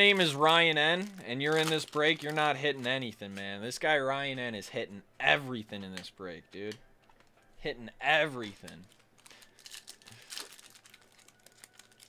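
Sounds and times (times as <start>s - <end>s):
cards being handled: 0.0s - 3.8s, 8.1s - 12.0s
foil wrapper crinkling: 0.0s - 3.8s, 8.2s - 12.0s.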